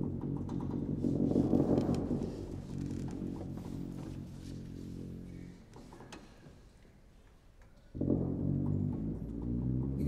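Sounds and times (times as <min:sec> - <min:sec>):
tuba holding low chord: 0:08.0 - 0:10.0.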